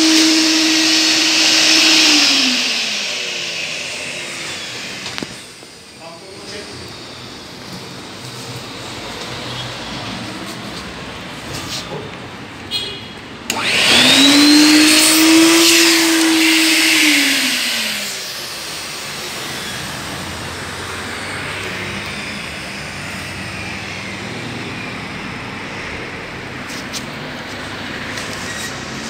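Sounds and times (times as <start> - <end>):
vacuum cleaner motor whine: 0.0 - 9.4, 13.5 - 29.0.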